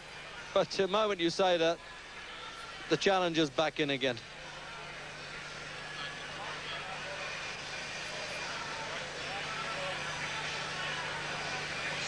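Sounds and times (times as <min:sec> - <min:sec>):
arena crowd din: 0:00.0 - 0:12.0.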